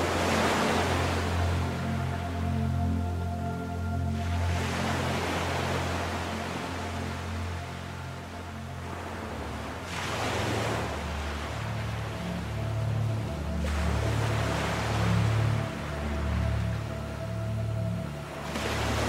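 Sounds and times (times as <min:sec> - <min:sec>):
ocean waves: 0:00.0 - 0:19.0
slow ambient music: 0:00.0 - 0:19.0.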